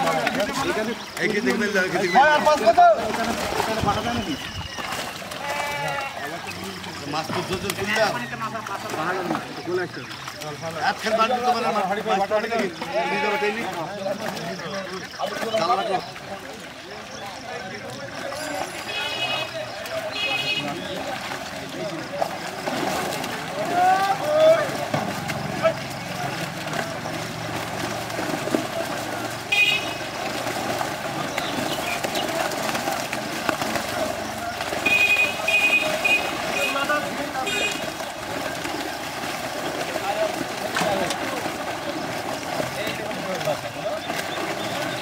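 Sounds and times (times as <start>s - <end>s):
fish thrashing in a net: 0.0s - 45.0s
men talking and calling out: 0.0s - 45.0s
water splashing: 0.0s - 45.0s.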